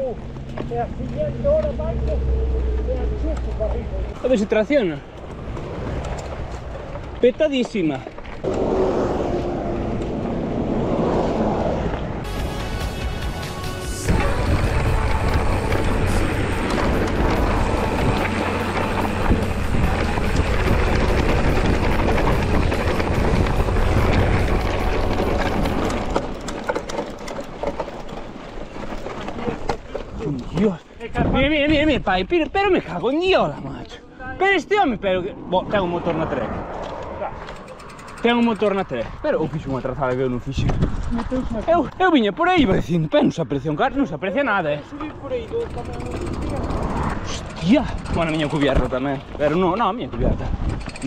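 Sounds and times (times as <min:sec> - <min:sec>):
bike rattling: 0:00.0 - 0:08.9, 0:11.9 - 0:51.0
wind on microphone: 0:08.4 - 0:12.3, 0:14.1 - 0:26.5, 0:40.5 - 0:41.6, 0:50.1 - 0:51.0
tyres crunching on gravel: 0:11.9 - 0:31.1.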